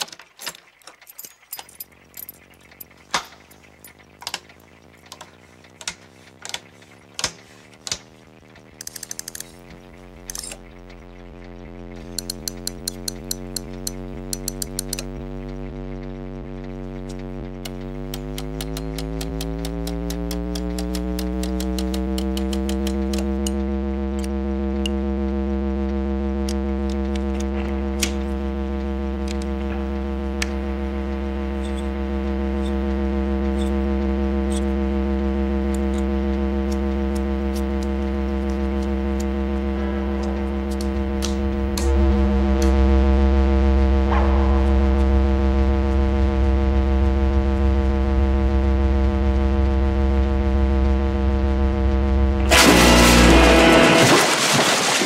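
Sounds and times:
sharp clicks: 0:00.0 - 0:25.0
deep mains hum: 0:01.1 - 0:55.0
tube amplifier buzzing: 0:01.6 - 0:55.0.

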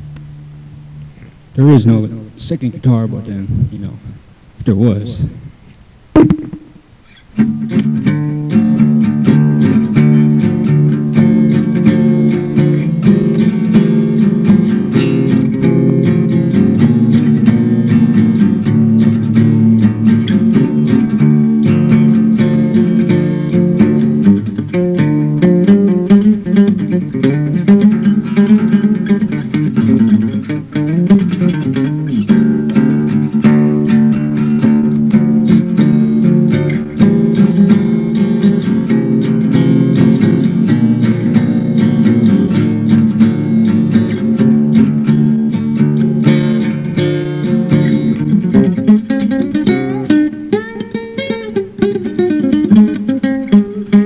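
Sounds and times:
solo acoustic guitar: 0:00.0 - 0:54.0.

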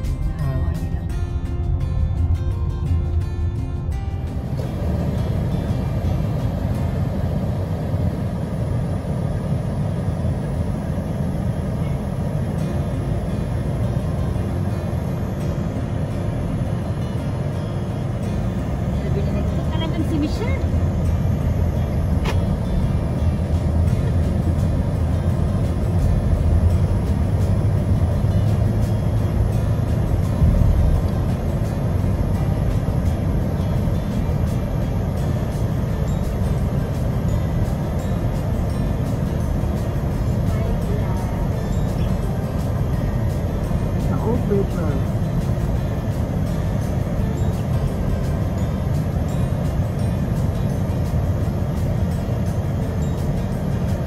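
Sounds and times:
road and engine rumble in car: 0:00.0 - 0:54.0.

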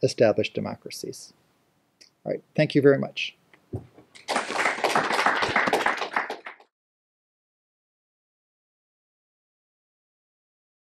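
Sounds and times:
audience applauding: 0:04.2 - 0:06.7.

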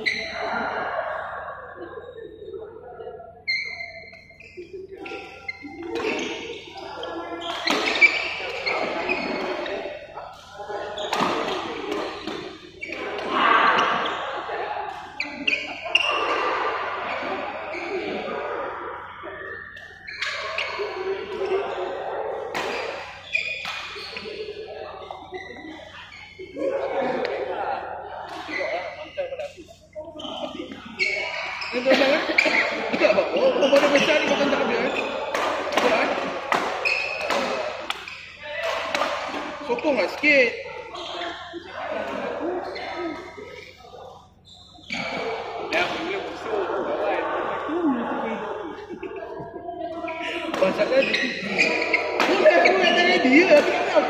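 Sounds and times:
people's voices: 0:00.0 - 0:54.0
rackets hitting shuttlecock: 0:07.1 - 0:14.0, 0:22.4 - 0:24.5, 0:32.0 - 0:39.6, 0:50.4 - 0:54.0.

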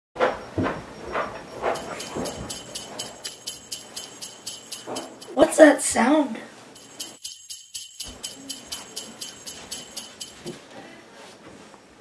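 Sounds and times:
jingle bells shaken: 0:01.5 - 0:05.5, 0:06.8 - 0:10.6.

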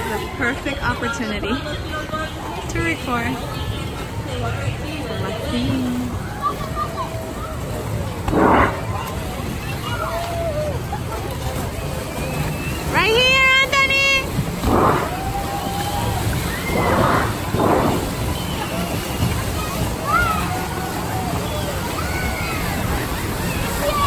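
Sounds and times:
distant voices babbling: 0:00.0 - 0:24.0
water sloshing and splashing: 0:00.0 - 0:24.0.

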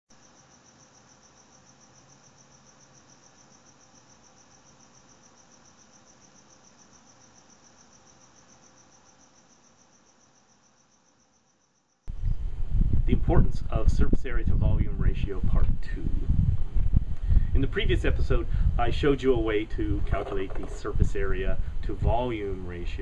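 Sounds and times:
cricket chirping: 0:00.1 - 0:13.3.

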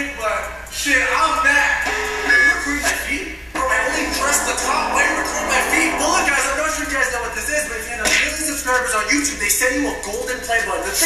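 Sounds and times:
music with voice over: 0:03.6 - 0:07.2.

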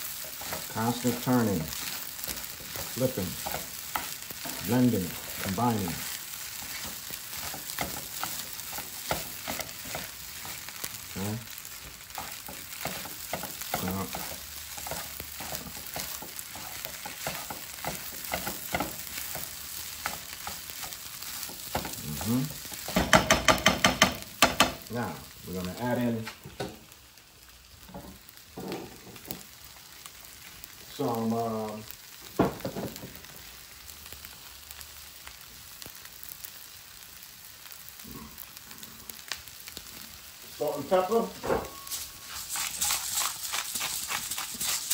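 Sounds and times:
fried rice sizzling in skillet: 0:00.0 - 0:44.9
utensils scraping and clicking on pan: 0:00.1 - 0:10.7, 0:12.1 - 0:24.7, 0:41.8 - 0:44.9
sharp taps on pan: 0:22.9 - 0:24.9.

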